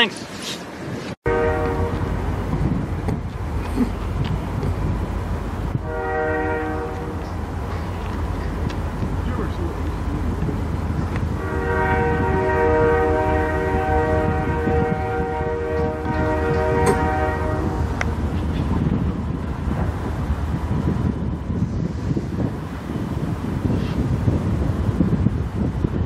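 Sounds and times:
train air horn blast: 1.3 - 2.1, 5.8 - 7.4, 11.4 - 18.0
diesel locomotive rumble: 1.3 - 26.0.

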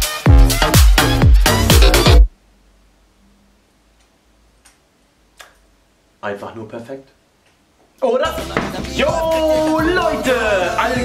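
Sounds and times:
faint low hum: 2.3 - 8.0.

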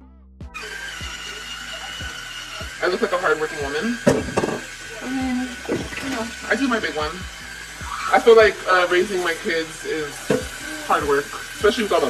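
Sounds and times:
background music beat: 0.0 - 12.0
small electric motor whirring: 0.6 - 12.0.

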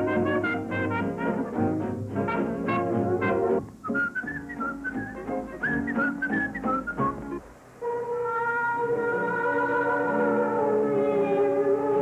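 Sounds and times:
music with whistled melody: 3.2 - 7.4.

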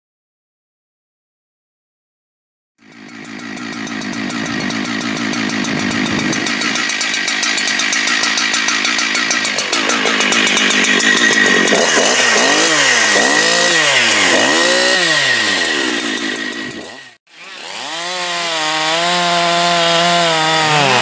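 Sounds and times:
chainsaw engine revving: 2.8 - 21.0.

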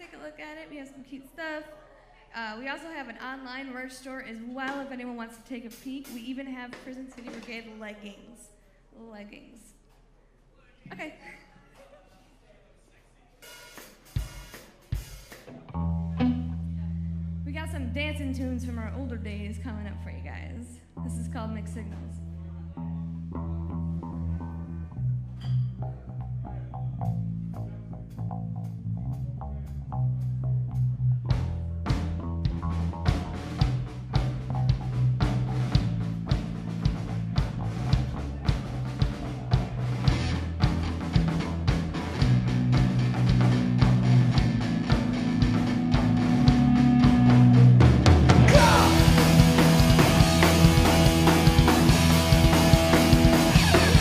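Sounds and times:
drums steady beat: 4.7 - 7.9, 13.4 - 15.7, 27.1 - 54.0
electric bass riff: 15.7 - 20.3, 20.9 - 54.0
punk rock band playing: 31.4 - 54.0.

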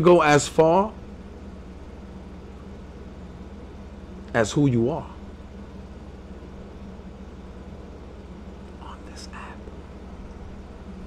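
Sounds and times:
faint buzz: 0.0 - 11.0
low electrical hum: 0.0 - 11.0.

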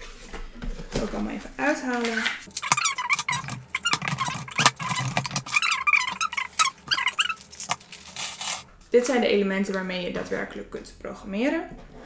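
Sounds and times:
plastic wrapping crinkling: 2.4 - 8.7.

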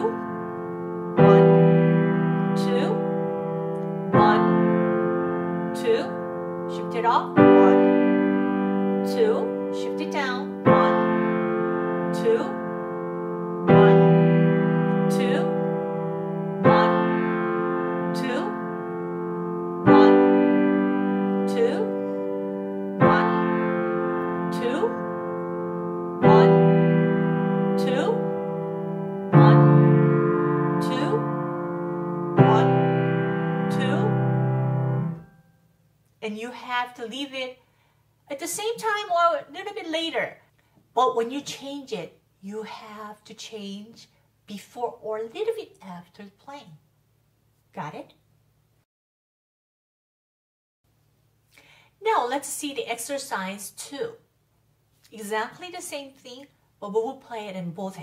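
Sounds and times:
piano chords ringing with sustain: 0.0 - 35.6.

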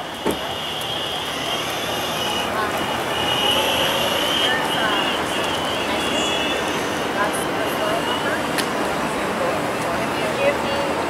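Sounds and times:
wheels rumbling on pavement: 0.0 - 11.0.

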